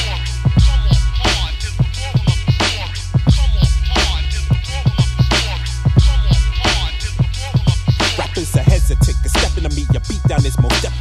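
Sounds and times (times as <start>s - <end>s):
deep bass line: 0.0s - 11.0s
drum beat: 0.0s - 11.0s
rapper's voice: 0.0s - 11.0s.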